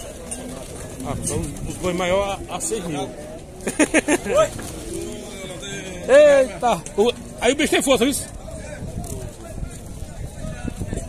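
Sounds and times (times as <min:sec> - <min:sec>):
faint background talk: 0:00.0 - 0:11.0.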